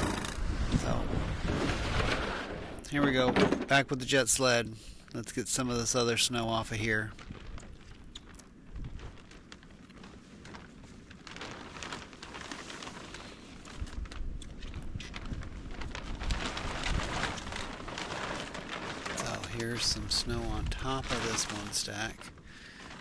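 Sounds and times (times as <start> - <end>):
plastic sheeting rustling: 0.0 - 4.6, 5.2 - 23.0.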